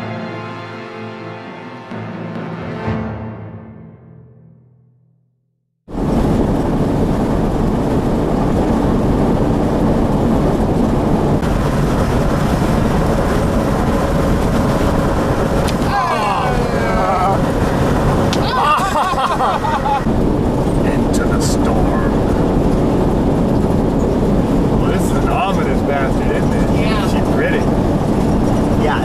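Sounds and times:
vehicle road and engine noise: 0:05.9 - 0:29.0
faint voices: 0:24.8 - 0:27.7.

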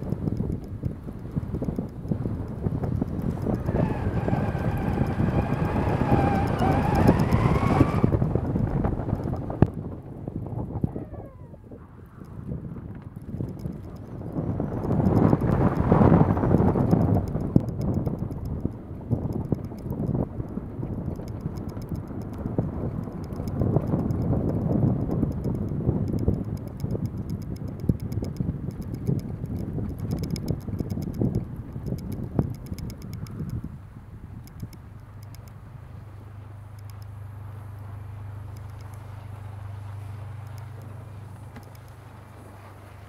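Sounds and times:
wind buffeting microphone: 0:00.0 - 0:43.0
irregular knocks and clicks: 0:21.0 - 0:33.6.

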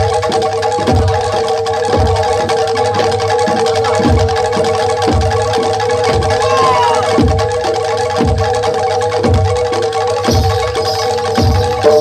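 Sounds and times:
deep drum beat: 0:04.0 - 0:08.6.

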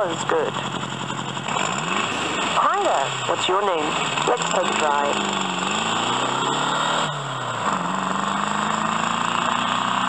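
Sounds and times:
recorded voice: 0:00.0 - 0:00.6, 0:02.6 - 0:05.2.

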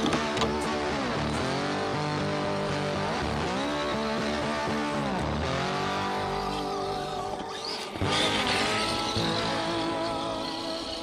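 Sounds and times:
electric motor whining: 0:00.0 - 0:11.0
music playing: 0:00.0 - 0:11.0.

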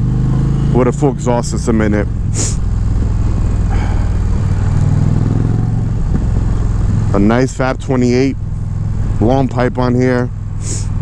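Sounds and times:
motorcycle engine drone: 0:00.0 - 0:11.0
short hiss: 0:10.6 - 0:10.9.

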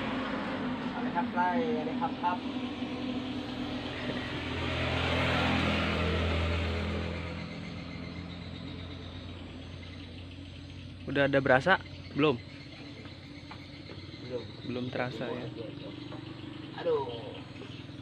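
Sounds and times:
motor vehicle passing by: 0:00.0 - 0:18.0.

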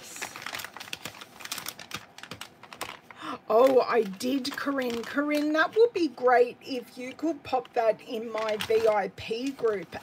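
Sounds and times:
plastic wrapper crinkling: 0:00.0 - 0:06.0, 0:07.0 - 0:10.0.

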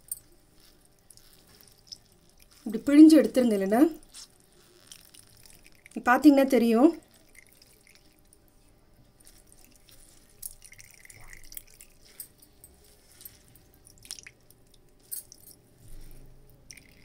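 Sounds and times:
liquid trickling and dripping: 0:00.0 - 0:17.0.

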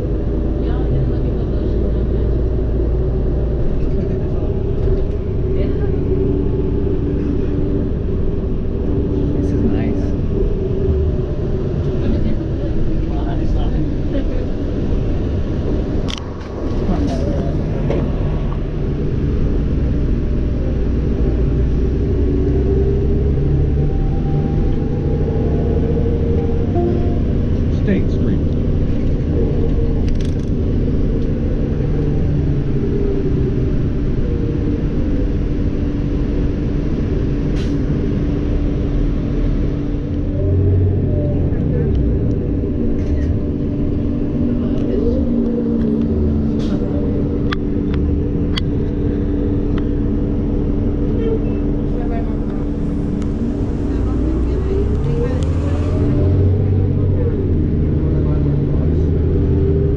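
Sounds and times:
vehicle engine and road rumble: 0:00.0 - 0:59.9.

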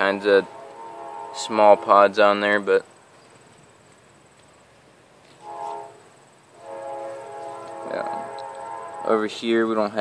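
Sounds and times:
horn blasts: 0:00.0 - 0:02.7, 0:05.4 - 0:10.0.

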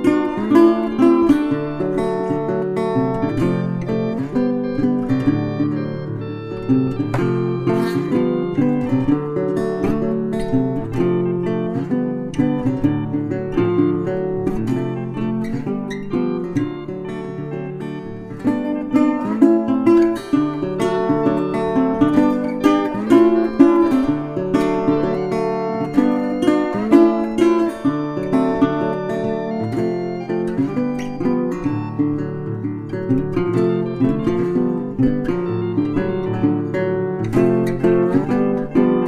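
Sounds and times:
acoustic guitar chords: 0:00.0 - 0:39.0.

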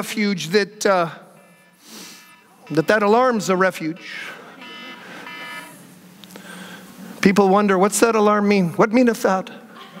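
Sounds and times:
electronic alarm buzzy beeps: 0:01.4 - 0:05.8.

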